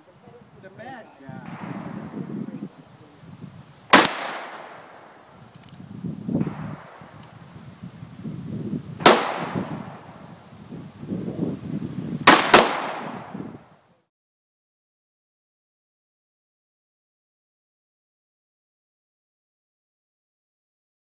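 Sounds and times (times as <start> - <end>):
revolver gunshots with echo: 1.4 - 2.5, 3.9 - 5.2, 6.4 - 7.2, 9.0 - 10.2, 12.2 - 13.4.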